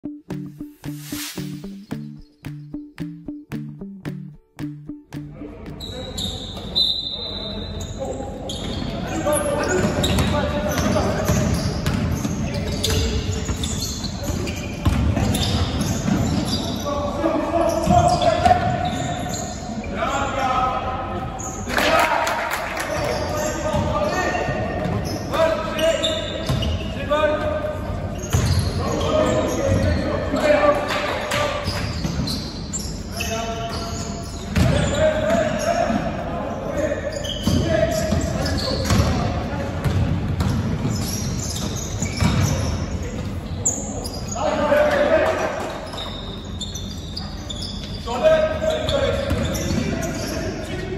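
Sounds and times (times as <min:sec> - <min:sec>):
brief music: 0:00.0 - 0:05.5.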